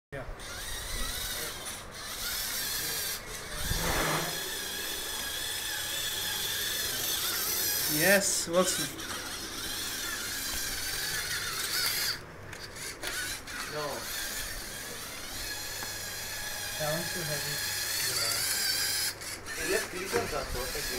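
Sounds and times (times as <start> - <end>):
small electric motors whirring: 0.2 - 20.9.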